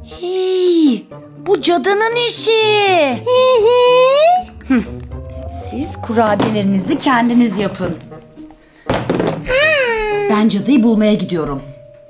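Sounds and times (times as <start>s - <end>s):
sudden thunk: 6.3s - 7.2s, 8.9s - 9.5s.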